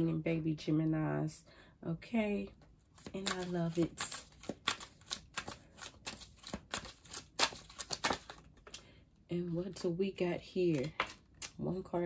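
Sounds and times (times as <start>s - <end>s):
cards being shuffled: 2.9s - 8.8s, 10.6s - 11.6s.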